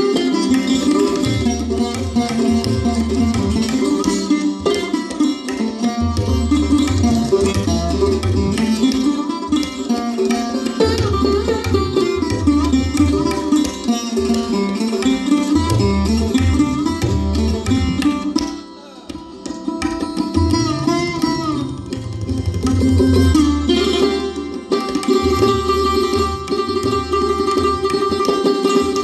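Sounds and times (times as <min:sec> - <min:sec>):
sarod melody: 0:00.0 - 0:29.0
tabla drumming: 0:00.0 - 0:29.0
violin: 0:00.0 - 0:29.0.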